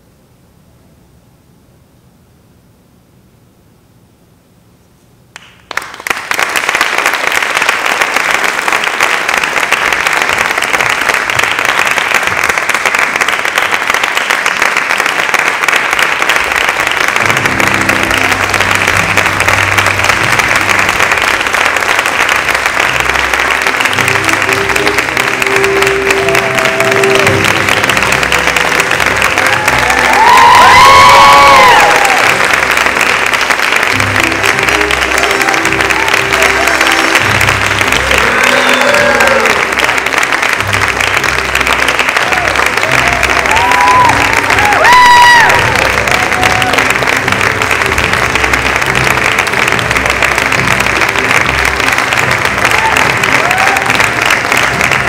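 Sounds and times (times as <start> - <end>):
audience applauding: 5.4 - 55.0
music: 15.8 - 55.0
whooping cheer: 25.8 - 27.8, 28.8 - 32.6, 37.9 - 39.8, 42.1 - 47.2, 52.6 - 55.0.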